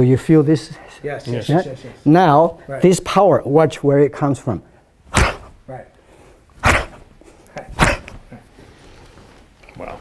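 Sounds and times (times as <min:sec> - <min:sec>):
short sharp bursts: 0:05.1 - 0:05.6, 0:06.6 - 0:07.1, 0:07.7 - 0:08.2.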